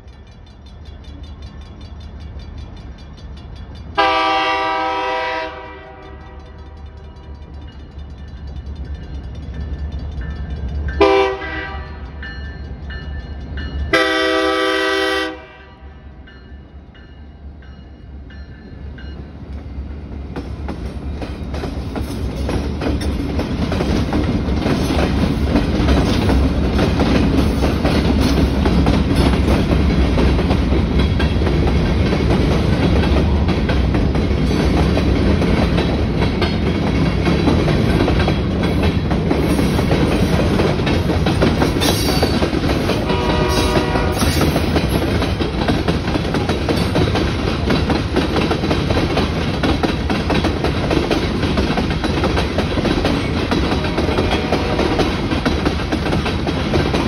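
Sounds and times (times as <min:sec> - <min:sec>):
diesel locomotive engine: 0:00.0 - 0:57.0
train wheels clattering over rail joints: 0:17.7 - 0:57.0.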